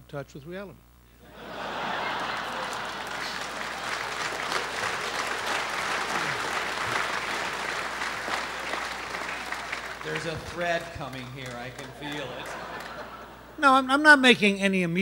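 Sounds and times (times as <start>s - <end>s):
audience applauding: 1.4s - 13.5s.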